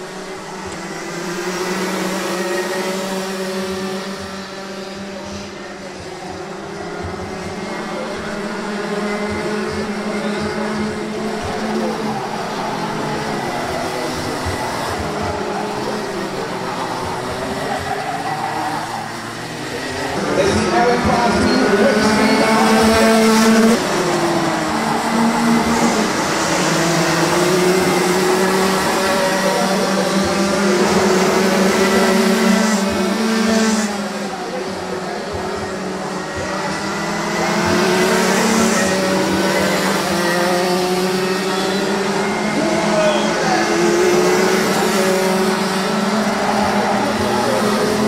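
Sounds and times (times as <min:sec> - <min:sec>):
kart engines racing: 0:00.0 - 0:48.0.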